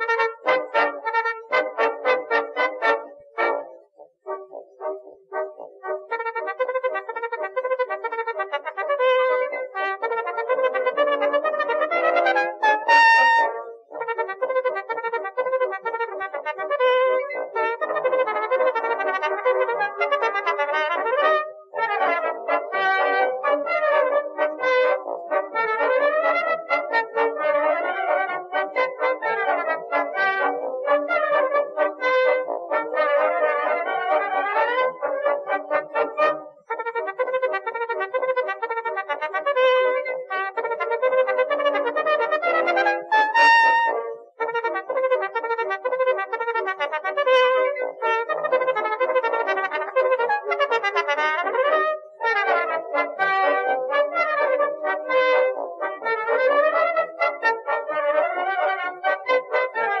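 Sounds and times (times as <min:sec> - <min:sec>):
instrumental music with wind melody: 0:00.0 - 1:00.0.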